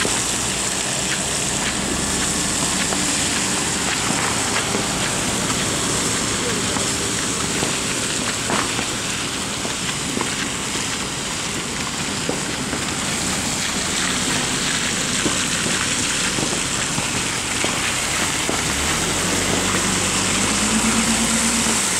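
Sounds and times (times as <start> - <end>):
steady rain: 0.0 - 21.9
tyres on wet road: 0.0 - 21.9
vehicle engine humming: 0.0 - 21.9.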